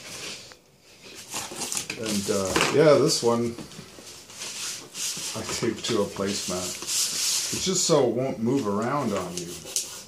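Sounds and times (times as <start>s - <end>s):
paper sheets rustling: 0.0s - 10.0s.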